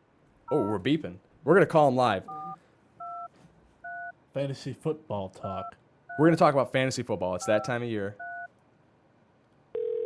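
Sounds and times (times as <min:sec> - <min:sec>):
telephone line tone: 0:09.8 - 0:10.0.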